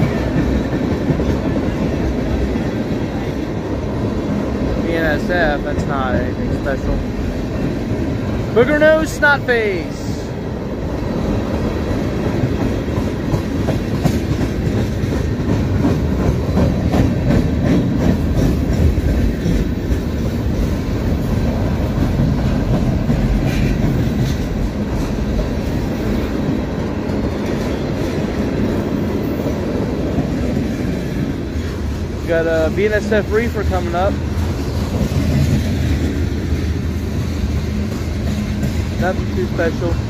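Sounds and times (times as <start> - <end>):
train wheels rumbling on rails: 0.0 - 40.0
wheels clacking over rail joints: 0.0 - 40.0.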